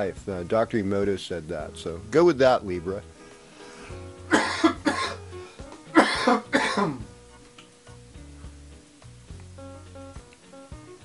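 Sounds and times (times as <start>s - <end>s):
quiet background music: 0.0s - 11.0s
man coughing: 4.3s - 5.2s, 6.0s - 7.1s.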